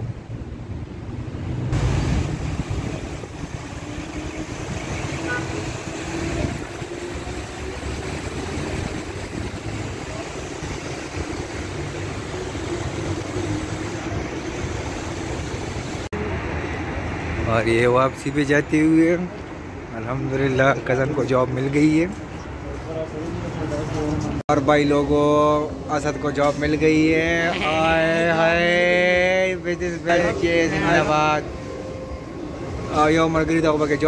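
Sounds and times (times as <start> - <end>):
city street traffic: 0.0 - 34.0.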